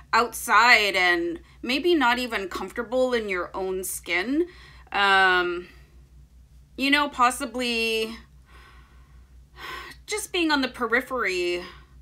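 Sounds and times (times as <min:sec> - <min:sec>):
woman speaking: 0:00.1 - 0:05.8, 0:06.8 - 0:08.2, 0:10.0 - 0:11.8
in-breath: 0:04.5 - 0:04.9, 0:08.4 - 0:10.0.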